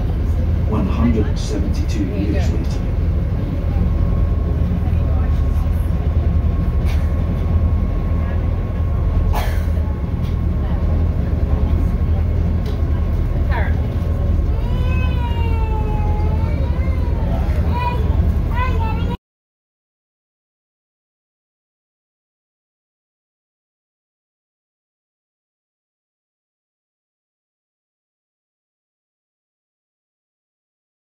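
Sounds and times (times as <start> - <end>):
boat engine droning: 0.0 - 19.2.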